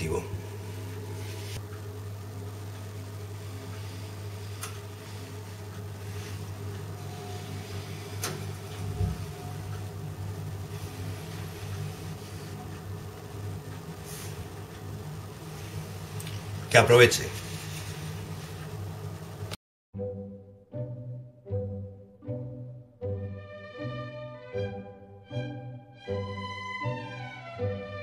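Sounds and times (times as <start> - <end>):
low mechanical hum: 0.0 - 19.6.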